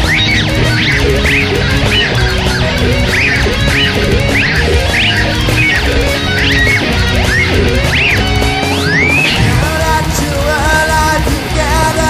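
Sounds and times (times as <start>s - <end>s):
guitar notes sliding upward: 0.0s - 12.0s
heavy metal band playing: 0.0s - 12.0s.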